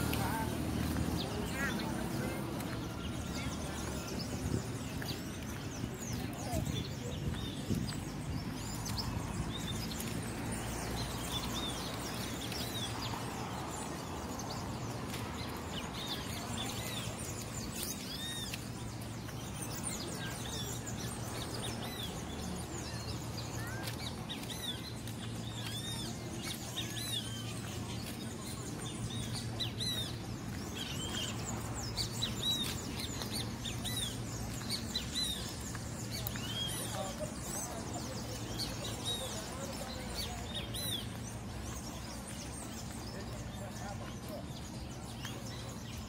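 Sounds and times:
birds chirping: 0:00.0 - 0:46.0.

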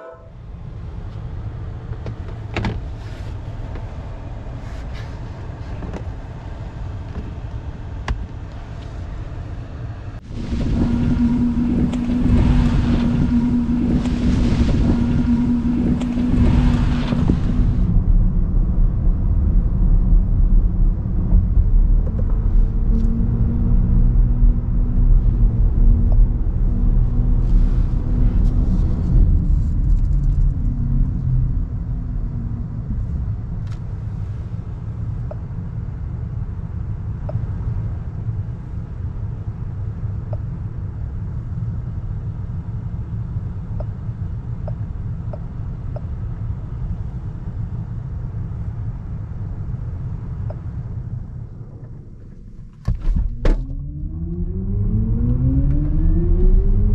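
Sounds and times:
tyres rumbling on road: 0:00.2 - 0:56.9.

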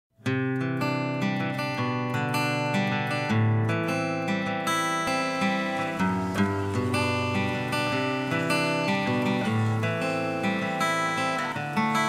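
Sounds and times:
strummed acoustic guitar: 0:00.2 - 0:12.0.

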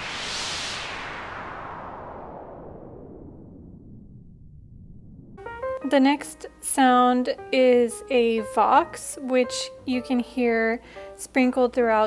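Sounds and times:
synth ocean wave hiss: 0:00.0 - 0:02.5.

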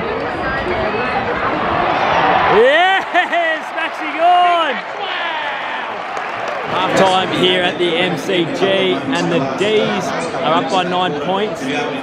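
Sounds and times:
stadium crowd noise: 0:00.0 - 0:12.0
man cheering and shouting: 0:02.5 - 0:06.0.

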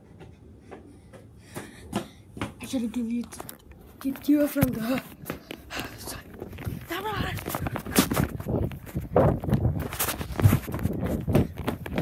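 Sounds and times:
running footsteps: 0:00.0 - 0:12.0.

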